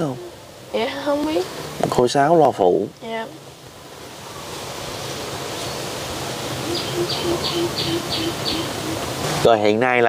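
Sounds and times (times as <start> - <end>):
steady outdoor hiss: 0.0 - 10.0
animal calling notes: 6.5 - 9.1.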